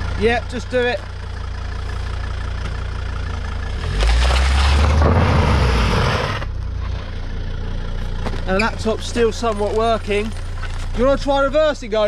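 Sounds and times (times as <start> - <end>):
car engine idling and revving: 0.0 - 12.0
tyres rolling on dirt: 3.7 - 12.0.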